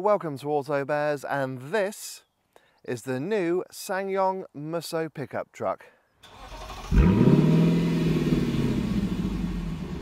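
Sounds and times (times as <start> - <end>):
car engine starting and revving: 6.2 - 10.0.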